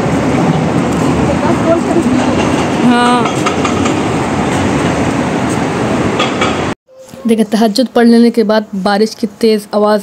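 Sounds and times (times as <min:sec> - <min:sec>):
loud steady rushing noise: 0:00.0 - 0:06.7.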